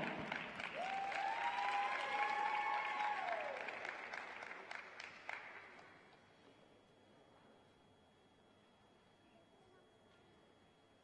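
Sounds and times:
audience applauding: 0:00.0 - 0:05.9.

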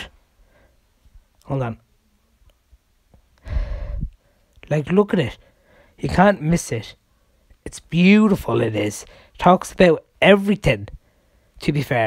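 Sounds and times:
person sighing: 0:03.4 - 0:04.1.

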